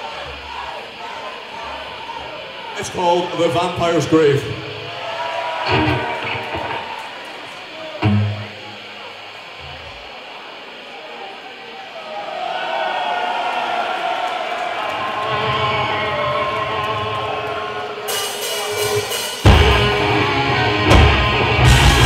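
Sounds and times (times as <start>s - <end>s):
electric guitar noise: 0.0s - 11.9s, 14.9s - 22.0s
crowd cheering and shouting: 0.0s - 22.0s.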